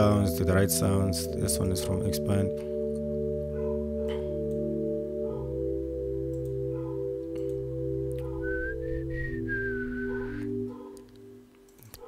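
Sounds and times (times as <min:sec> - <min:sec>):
soft synth pad chords: 0:00.0 - 0:11.8
low bass: 0:07.5 - 0:10.7
high whistling line: 0:08.4 - 0:10.6.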